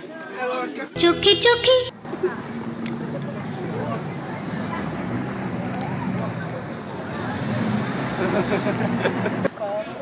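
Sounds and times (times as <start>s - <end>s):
street traffic: 0.9s - 10.0s.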